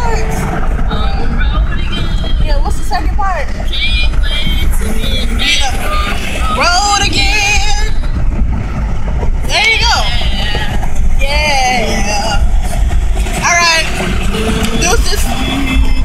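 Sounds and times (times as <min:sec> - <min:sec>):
woman's voice: 0:00.0 - 0:08.0, 0:09.5 - 0:12.7, 0:13.4 - 0:14.0, 0:14.6 - 0:15.5
car driving low rumble: 0:00.0 - 0:16.0.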